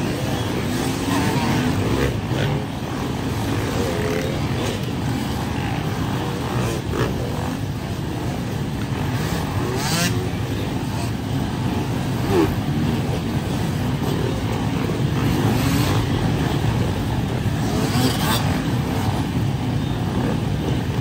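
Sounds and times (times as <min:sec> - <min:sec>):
dirt bike engines passing: 0:00.0 - 0:21.0.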